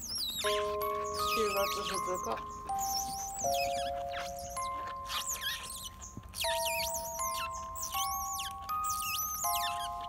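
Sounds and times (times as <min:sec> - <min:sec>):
otter pups squeaking: 0:00.0 - 0:10.0
background music with held notes: 0:00.1 - 0:10.0.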